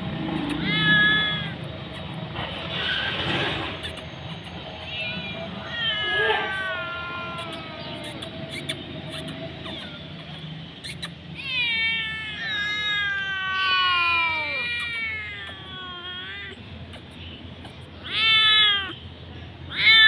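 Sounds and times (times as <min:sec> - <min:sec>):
cat meowing: 0:00.4 - 0:03.1, 0:03.8 - 0:19.0, 0:19.7 - 0:20.0.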